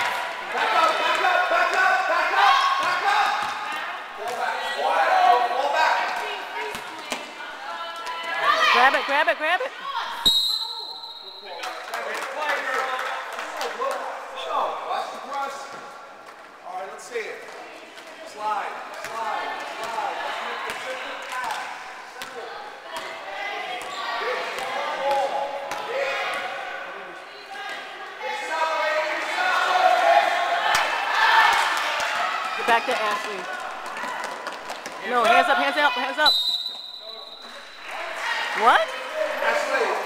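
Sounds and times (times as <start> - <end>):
players and spectators shouting: 0.0 - 6.6, 22.4 - 34.4
whistle blast: 10.2 - 11.6, 36.2 - 37.8.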